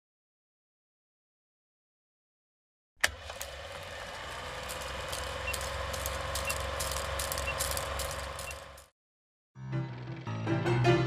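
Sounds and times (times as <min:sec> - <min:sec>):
film projector whirring: 0:03.0 - 0:08.9.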